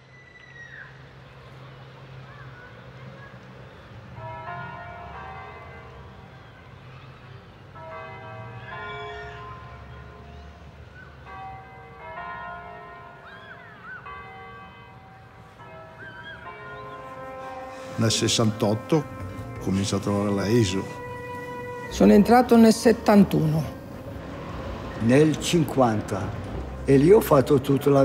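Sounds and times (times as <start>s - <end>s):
church bells ringing: 1.4s - 28.0s.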